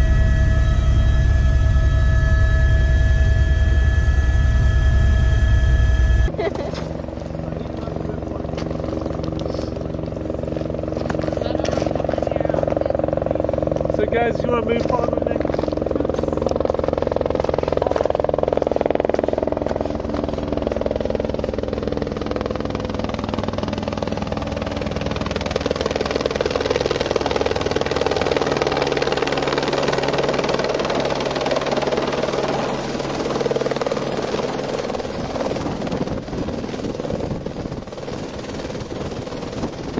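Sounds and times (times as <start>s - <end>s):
low steady tones: 0.0s - 6.4s
helicopter rotor beat: 0.0s - 39.9s.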